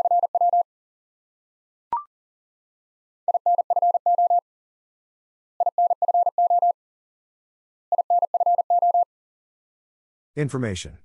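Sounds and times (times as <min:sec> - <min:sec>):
morse code tone beeping: 0:00.0 - 0:00.6, 0:03.3 - 0:04.4, 0:05.6 - 0:06.8, 0:07.9 - 0:09.1.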